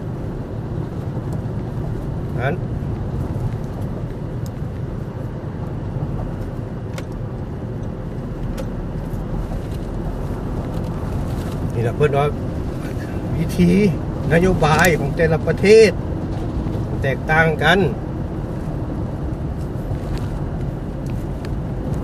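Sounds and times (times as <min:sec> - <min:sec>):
road and engine rumble in car: 0:00.0 - 0:22.0.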